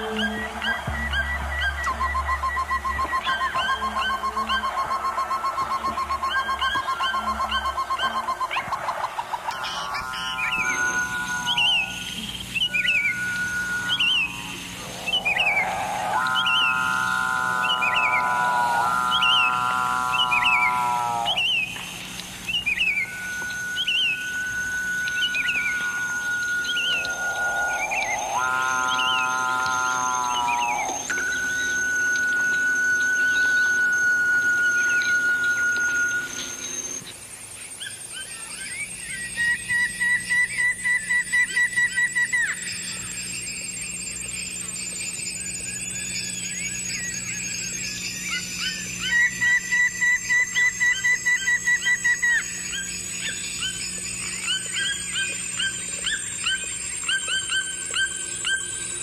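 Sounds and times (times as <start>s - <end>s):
buzzing tones: 0.0s - 37.2s
long steady whistling tones: 0.0s - 59.0s
short bird-like chirps: 0.2s - 37.1s.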